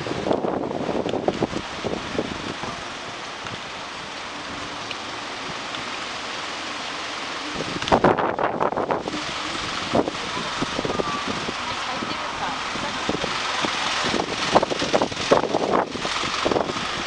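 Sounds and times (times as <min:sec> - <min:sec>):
city traffic hiss: 0:00.0 - 0:17.0.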